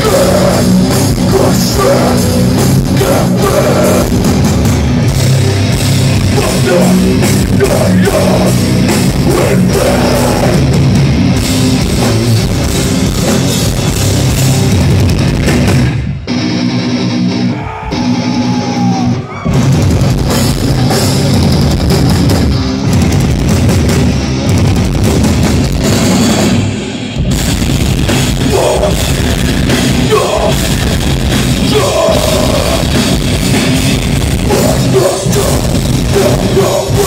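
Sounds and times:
drum kit and cymbals: 0.0s - 16.1s, 18.0s - 37.0s
bass guitar: 0.0s - 37.0s
distorted electric guitars: 0.0s - 37.0s.

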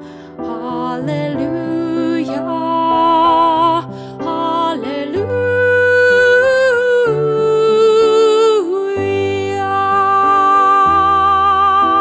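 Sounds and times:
woman singing sustained notes: 0.3s - 12.0s.

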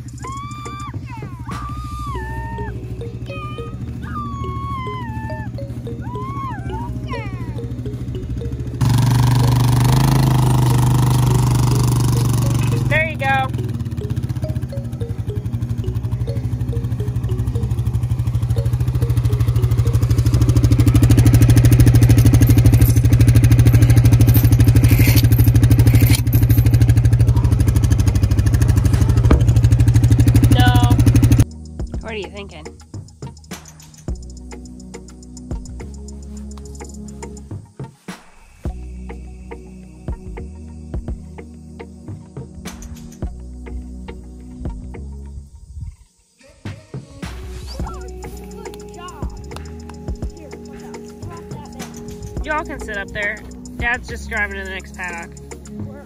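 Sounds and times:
atv engine droning: 0.0s - 37.7s, 47.2s - 56.0s
high calling voices: 0.0s - 38.0s, 38.7s - 56.0s.

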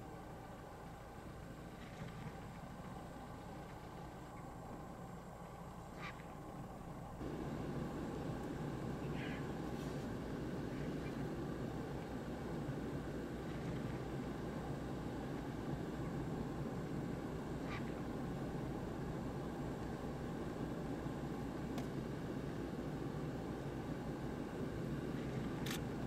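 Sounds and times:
low background rumble: 0.0s - 26.0s.

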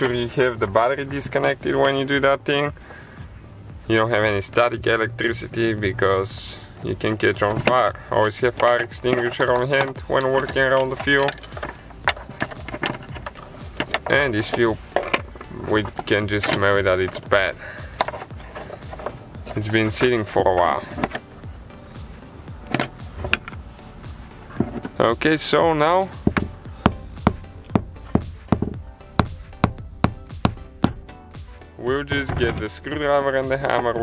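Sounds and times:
hammer striking screwdriver: 8.7s - 17.2s, 26.2s - 31.0s.

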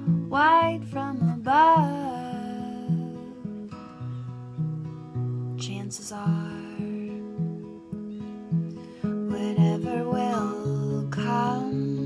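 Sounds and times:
woman singing: 0.0s - 4.0s, 5.6s - 7.5s, 9.1s - 12.0s
acoustic guitar picking chords: 0.0s - 12.0s.

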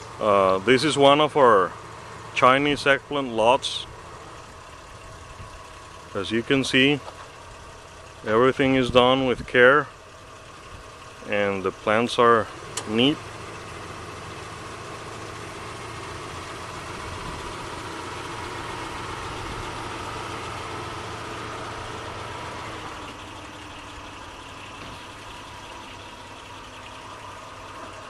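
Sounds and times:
engine hum: 0.0s - 28.0s.

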